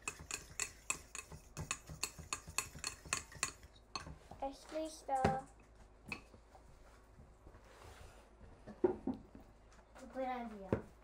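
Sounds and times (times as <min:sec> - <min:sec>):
child talking: 0:04.4 - 0:05.5, 0:10.0 - 0:10.9.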